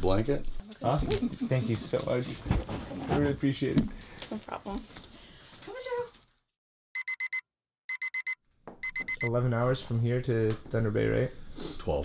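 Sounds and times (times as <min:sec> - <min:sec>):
alarm clock beeping: 0:07.0 - 0:09.3.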